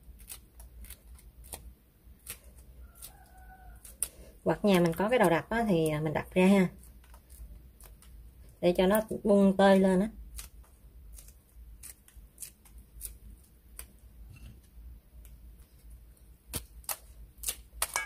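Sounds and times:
dried squid being torn by hand: 0:00.0 - 0:09.1, 0:09.7 - 0:14.2, 0:15.1 - 0:18.0.

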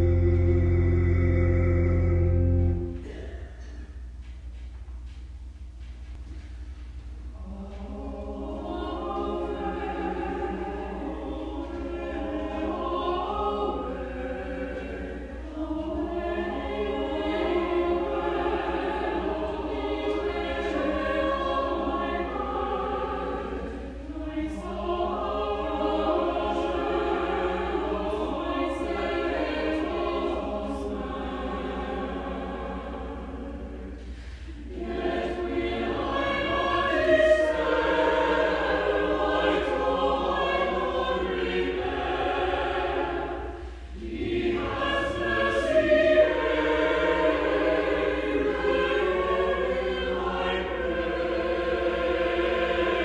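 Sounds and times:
church choir singing: 0:00.0 - 0:04.0, 0:07.3 - 0:53.0.

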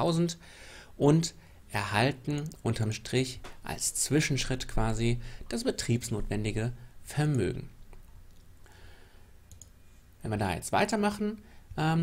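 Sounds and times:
faint soft hiss: 0:00.0 - 0:12.0
faint clicks: 0:09.5 - 0:09.8.

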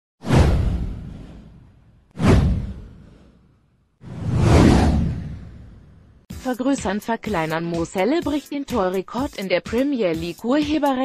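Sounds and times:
whoosh: 0:00.2 - 0:06.3
deep low boom: 0:00.3 - 0:03.3, 0:04.1 - 0:06.2.

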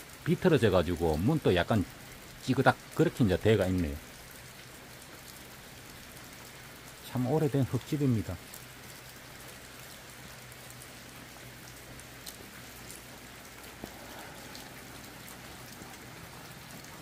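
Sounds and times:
light rain on tin roof: 0:00.0 - 0:17.0.

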